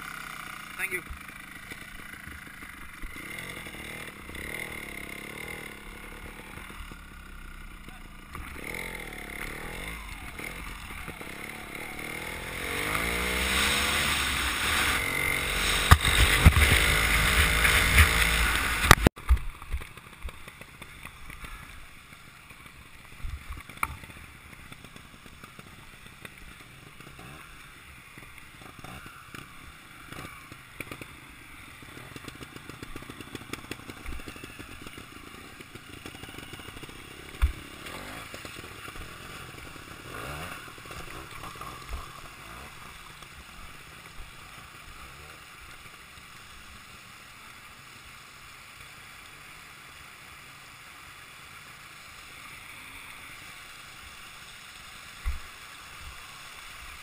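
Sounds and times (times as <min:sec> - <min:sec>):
motorcycle engine revving: 0:00.0 - 0:46.0.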